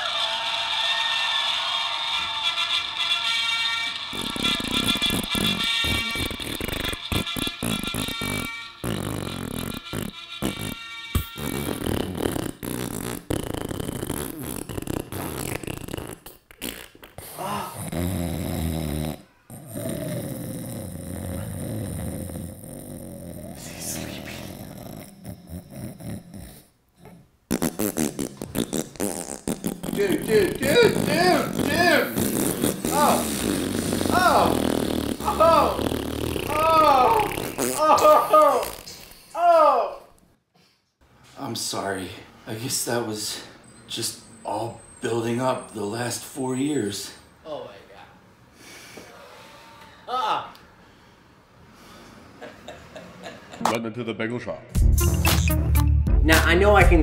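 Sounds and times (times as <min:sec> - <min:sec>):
music: 0:01.4 - 0:11.9, 0:54.7 - 0:57.0
long sputtering fart: 0:02.3 - 0:39.2
man laughing: 0:30.0 - 0:32.2, 0:35.2 - 0:35.8, 0:36.5 - 0:38.7, 0:52.4 - 0:53.8.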